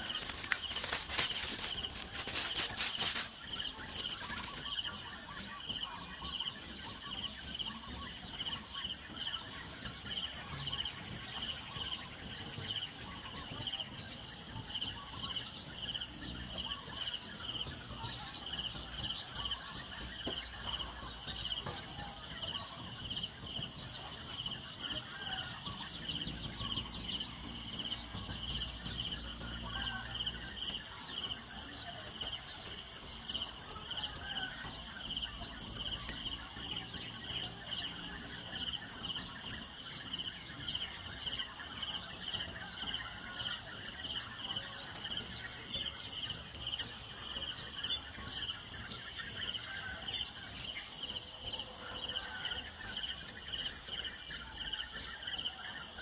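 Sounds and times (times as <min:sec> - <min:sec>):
faint bird chirps: 0:00.0 - 0:56.0
insect chirping rhythmically: 0:00.0 - 0:56.0.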